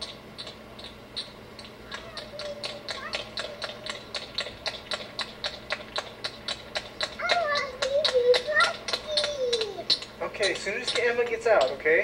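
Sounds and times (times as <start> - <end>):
rapid even ticking: 0.0 - 12.0
small child vocalizing: 1.9 - 4.0, 7.2 - 10.0.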